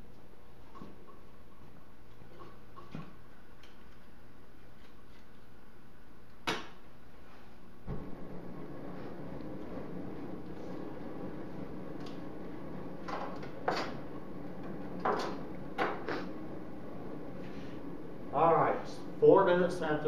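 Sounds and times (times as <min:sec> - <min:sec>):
burner humming: 0:07.8 - 0:20.0.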